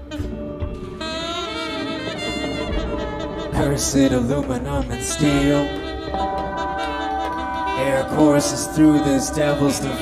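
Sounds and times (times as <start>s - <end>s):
jazz band playing: 0.0s - 10.0s
saxophones holding a note: 1.0s - 10.0s.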